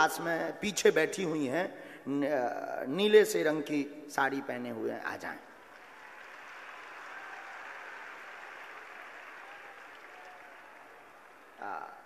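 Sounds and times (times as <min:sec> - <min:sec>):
distant crowd applauding: 0:05.6 - 0:11.7.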